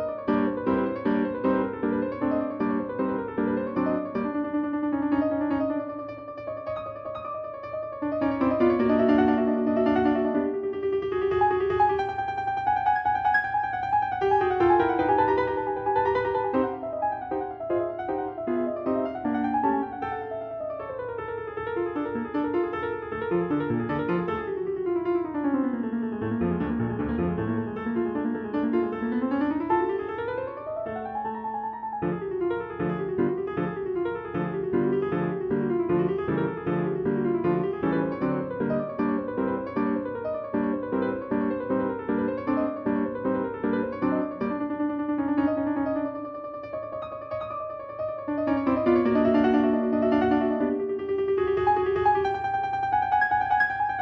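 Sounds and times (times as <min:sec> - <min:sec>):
piano music with running notes: 0:00.0 - 0:54.0.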